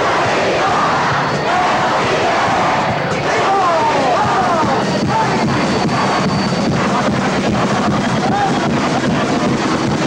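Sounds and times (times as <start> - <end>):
loud crowd noise: 0.0 - 10.0
steady drum beat: 0.0 - 10.0.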